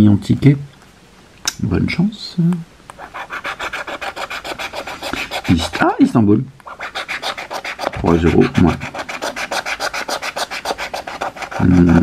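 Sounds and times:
lottery ticket being scratched: 3.0s - 5.9s, 6.6s - 12.0s.

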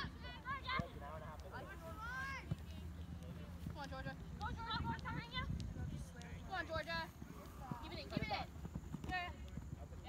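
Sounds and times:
distant shouting voices: 0.0s - 10.0s.

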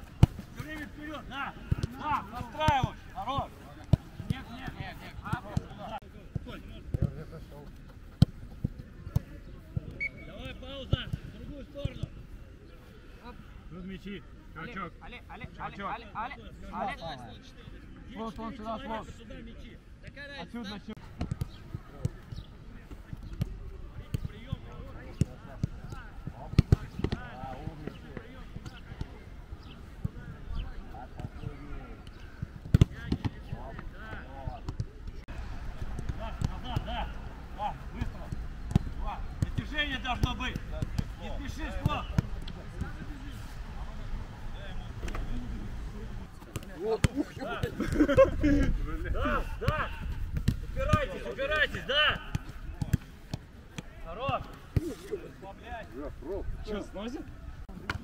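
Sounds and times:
voices calling out: 24.5s - 58.0s.

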